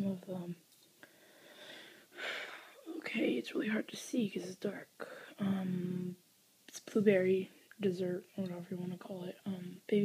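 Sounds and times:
soft breath close to microphone: 0:01.0 - 0:02.9.

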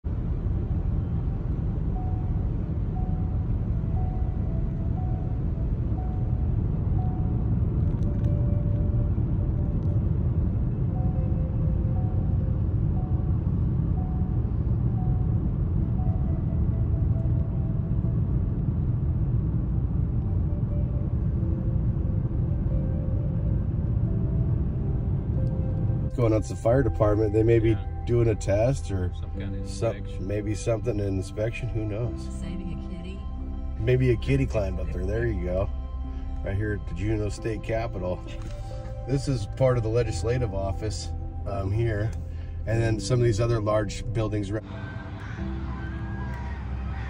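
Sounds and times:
car road and engine noise: 0:00.0 - 0:47.0
soft music: 0:00.1 - 0:47.0.

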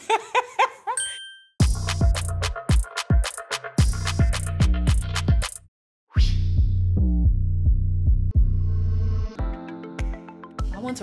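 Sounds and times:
person laughing: 0:00.0 - 0:01.0
bright ding: 0:01.0 - 0:01.6
electronic music beat: 0:01.6 - 0:05.7, 0:09.4 - 0:11.0.

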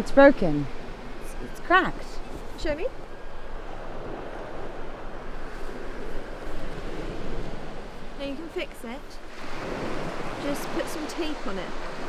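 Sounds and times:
wind rumbling on microphone: 0:00.0 - 0:12.0
surf washing onto beach: 0:01.0 - 0:12.0.

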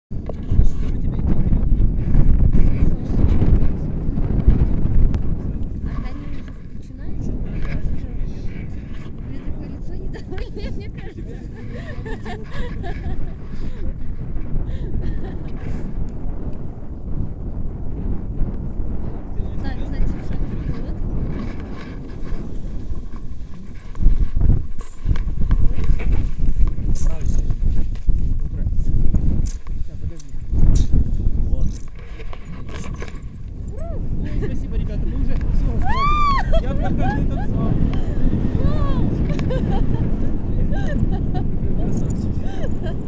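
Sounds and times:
wind buffeting microphone: 0:00.1 - 0:43.0.

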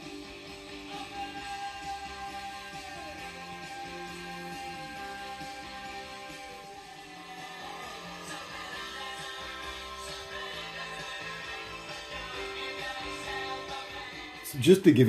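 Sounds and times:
guitar music through speaker cabinet: 0:00.0 - 0:15.0.

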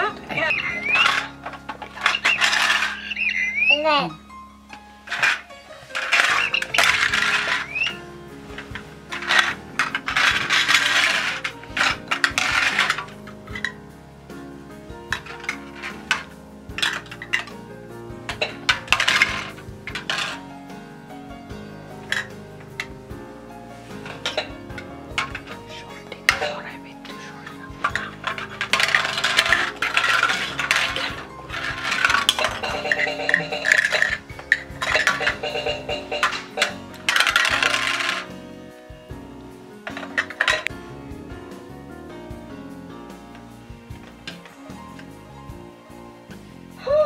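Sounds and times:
plastic pieces clattering in bucket: 0:00.0 - 0:03.3, 0:05.0 - 0:13.8, 0:15.1 - 0:17.7, 0:18.3 - 0:20.5, 0:22.0 - 0:23.0, 0:23.9 - 0:38.5, 0:39.8 - 0:40.7.

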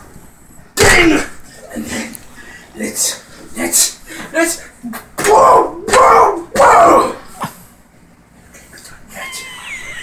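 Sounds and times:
man yelling: 0:00.8 - 0:01.4, 0:05.2 - 0:07.3.

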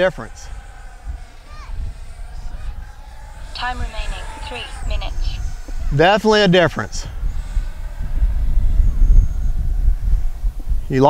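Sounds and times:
distant model jet whine: 0:00.0 - 0:11.0
wind buffeting microphone: 0:00.0 - 0:11.0.

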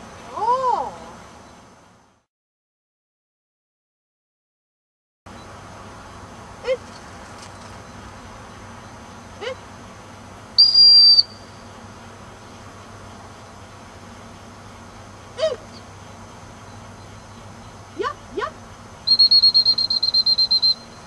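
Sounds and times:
dog whistle blast: 0:10.6 - 0:11.4, 0:19.1 - 0:20.9
faint short whistle calls: 0:10.6 - 0:11.6, 0:19.1 - 0:21.0.

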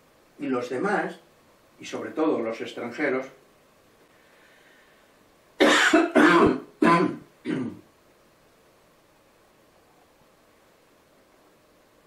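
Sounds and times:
man coughing: 0:05.6 - 0:07.8.

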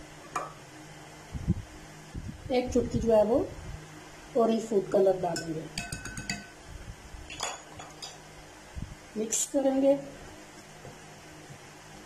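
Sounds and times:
spoon clinking glass bowl: 0:05.4 - 0:06.6.

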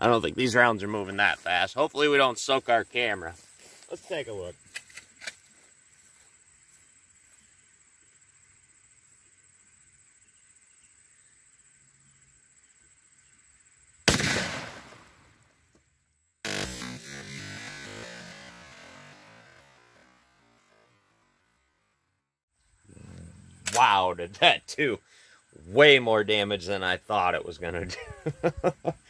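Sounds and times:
insects trilling: 0:00.0 - 0:15.5, 0:22.6 - 0:29.0
rifle shot: 0:14.1 - 0:15.3.

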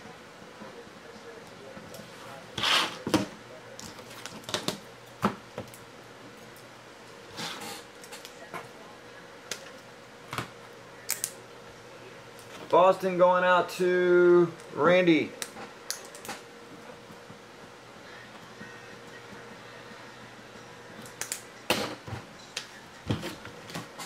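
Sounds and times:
faint steady hum: 0:00.0 - 0:24.0.

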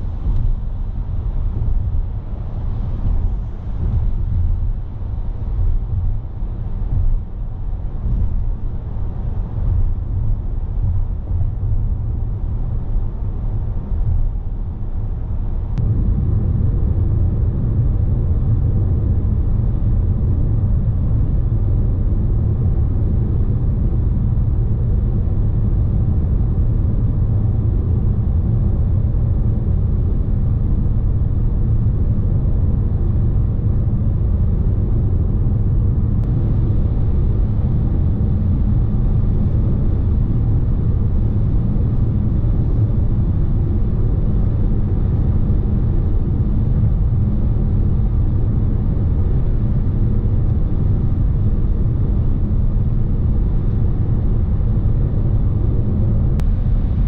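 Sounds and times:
wind noise: 0:00.0 - 0:57.0.

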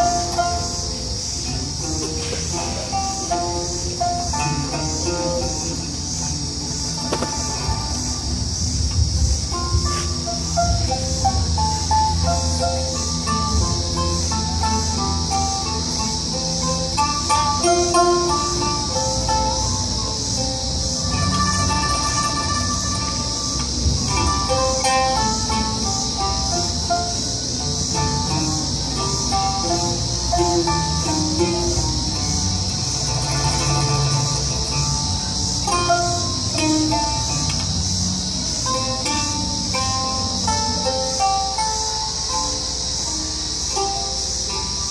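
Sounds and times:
cicada drone: 0:00.0 - 0:44.9
plucked string instruments: 0:00.0 - 0:44.9.

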